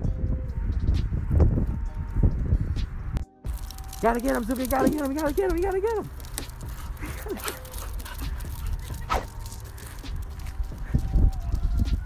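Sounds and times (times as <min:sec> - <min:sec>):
dog yelp: 0:06.8 - 0:09.4.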